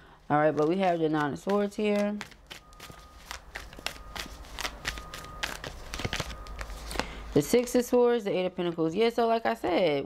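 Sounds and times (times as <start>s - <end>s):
cards flicking and sliding: 0.6s - 7.1s.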